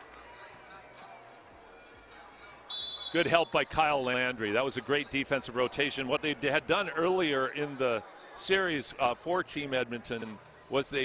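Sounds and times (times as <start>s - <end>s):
arena crowd ambience: 0.0s - 11.0s.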